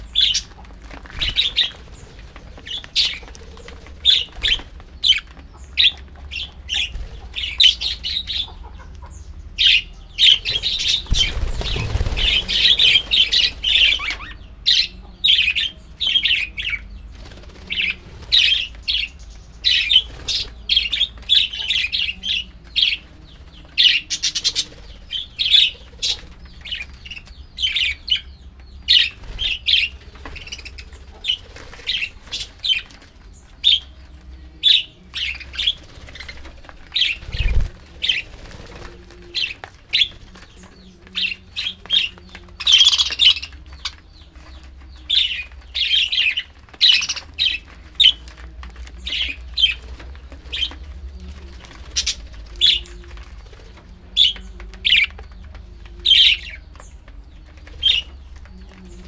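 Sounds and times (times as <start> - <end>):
wing flutters: 0.0 - 5.9, 10.2 - 14.3, 17.0 - 27.4, 28.9 - 33.9, 34.6 - 59.0
budgerigars chirping: 0.0 - 17.0, 17.7 - 34.0, 34.6 - 38.3, 39.4 - 50.8.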